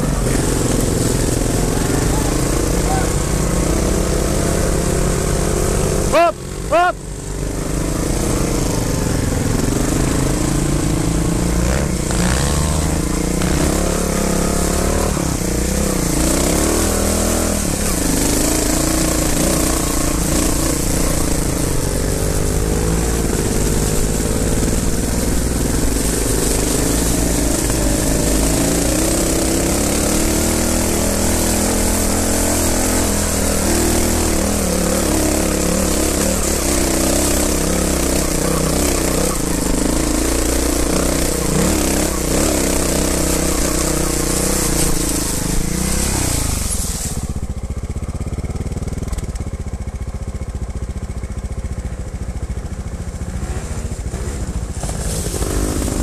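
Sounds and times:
motorcycle engine at low revs: 0:00.0 - 0:56.0.

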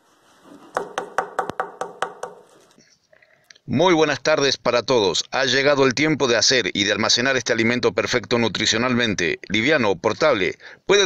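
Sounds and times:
light hard knocks: 0:00.8 - 0:02.6.

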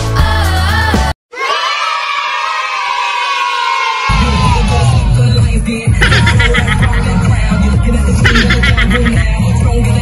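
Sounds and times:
cartoon voices cheering: 0:01.3 - 0:05.1
dance music with heavy bass: 0:04.1 - 0:10.0.

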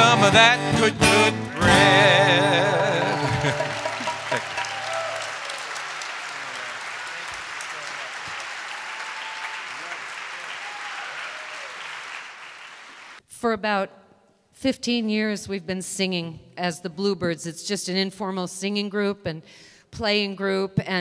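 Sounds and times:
acoustic guitar chord ringing: 0:00.0 - 0:04.5
audience applauding: 0:03.0 - 0:13.2.

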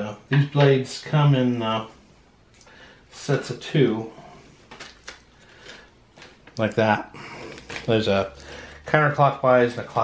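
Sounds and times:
plastic clicks and rustles: 0:04.7 - 0:08.8.

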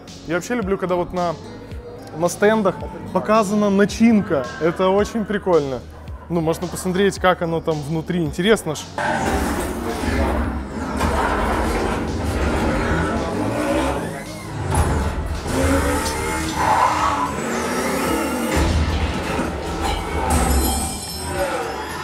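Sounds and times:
film soundtrack music: 0:00.0 - 0:22.0
deep bass: 0:02.7 - 0:20.9.

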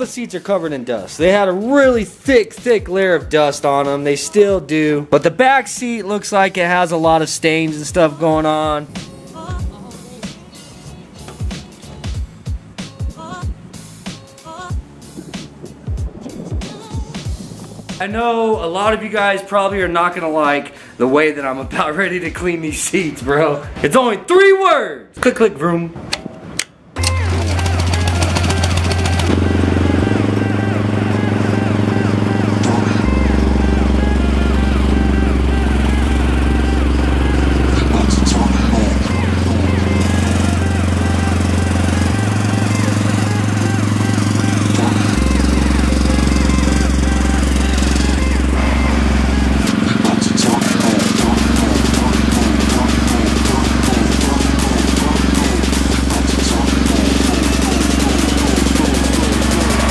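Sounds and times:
background music with deep bass: 0:00.0 - 0:23.9, 0:27.0 - 0:59.9.

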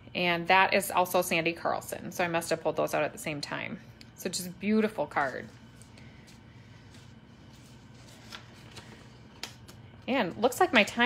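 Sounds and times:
low steady hum: 0:00.0 - 0:11.0
paper cards rustling: 0:05.2 - 0:10.4.

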